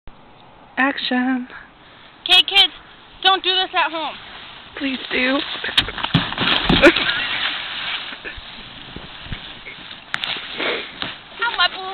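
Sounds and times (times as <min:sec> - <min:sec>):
boots thumping on plastic slide: 0:05.4 - 0:07.6.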